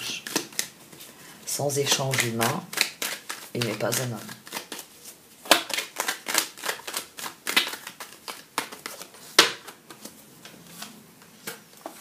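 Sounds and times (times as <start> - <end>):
cards being shuffled by hand: 1.8 - 12.0.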